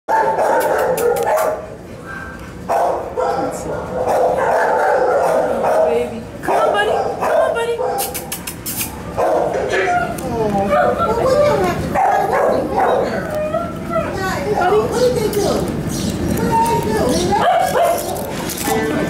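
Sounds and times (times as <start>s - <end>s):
dogs barking and yipping: 0.1s - 19.0s.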